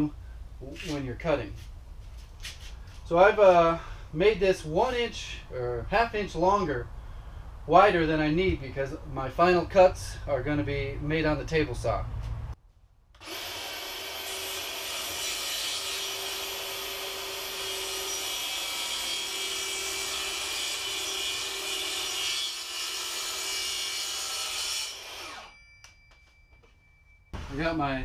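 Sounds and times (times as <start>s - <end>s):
track saw cutting panel: 13.2s - 25.5s.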